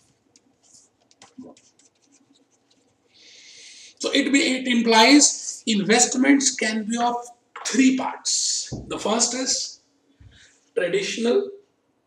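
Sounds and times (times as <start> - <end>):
pen scratching on board: 0.6 - 2.9.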